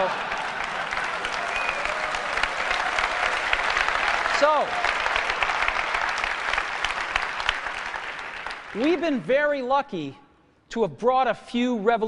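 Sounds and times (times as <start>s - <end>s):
audience applause: 0.0s - 9.3s.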